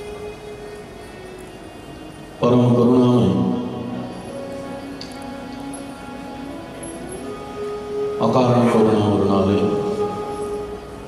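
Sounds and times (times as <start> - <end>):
soft sustained music: 0.0 - 11.0.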